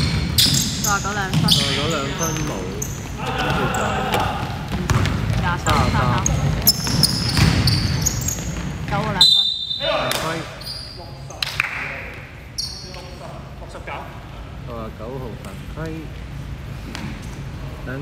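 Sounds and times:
basketball bouncing: 0.0s - 9.2s
sneakers squeaking: 0.0s - 11.4s, 12.4s - 13.4s
referee's whistle: 9.2s - 11.0s.

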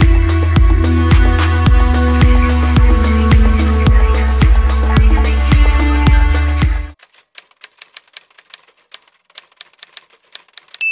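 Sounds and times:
background music with beat: 0.0s - 7.0s
typewriter key clacks: 7.0s - 10.9s.

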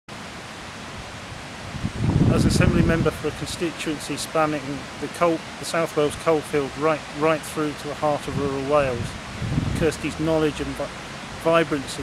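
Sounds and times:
steady background hiss: 0.1s - 12.0s.

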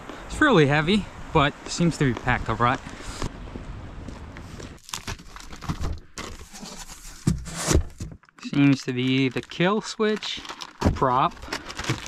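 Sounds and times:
cardboard box and plastic rustling: 4.5s - 12.0s.

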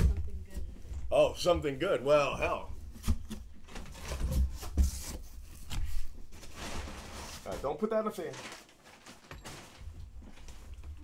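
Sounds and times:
packing paper rustling: 3.0s - 11.0s.

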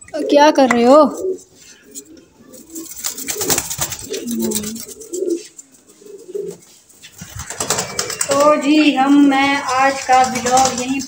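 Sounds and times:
pigeons cooing: 1.1s - 11.0s.

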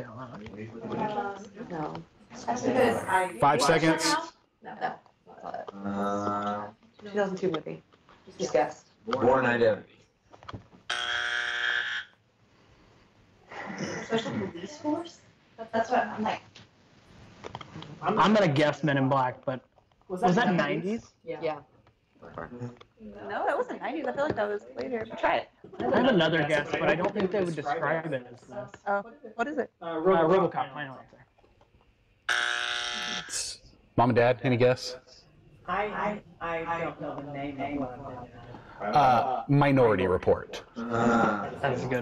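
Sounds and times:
game show buzzer: 10.9s - 12.2s, 32.3s - 33.6s.

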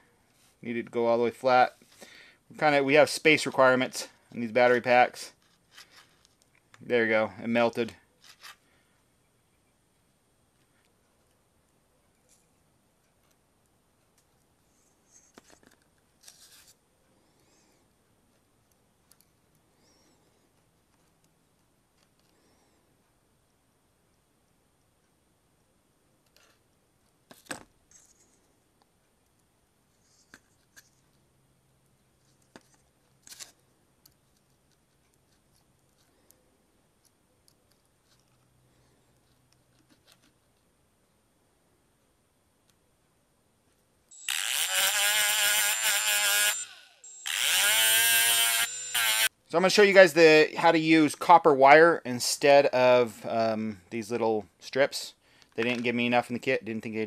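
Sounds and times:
tool scraping: 44.1s - 49.3s.

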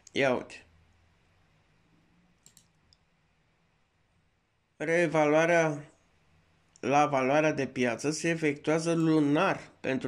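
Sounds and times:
faint computer mouse clicks: 2.4s - 3.1s.

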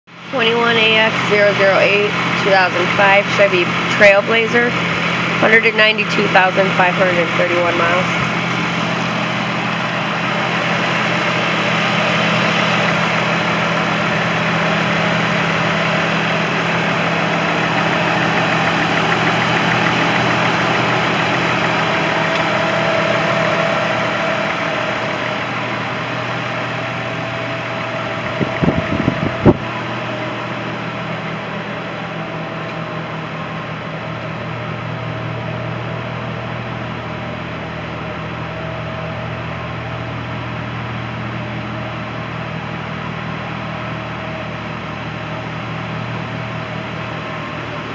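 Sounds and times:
car engine idling: 0.1s - 47.9s.

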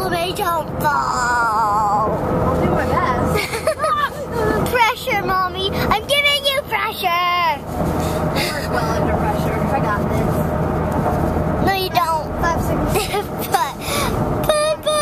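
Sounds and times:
girl's wavering wordless calls: 0.0s - 2.2s, 13.5s - 15.0s
car cabin road noise: 0.0s - 15.0s.

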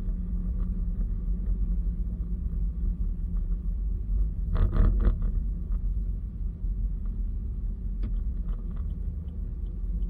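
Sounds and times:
car driving rumble inside cabin: 0.0s - 10.0s.

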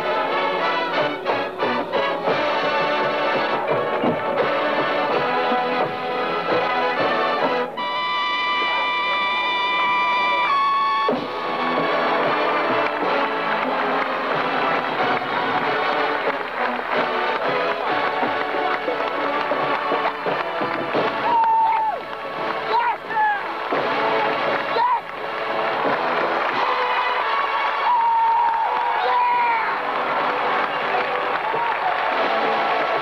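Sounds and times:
brass bugles playing: 0.0s - 33.0s
drum strokes: 0.8s - 27.3s.

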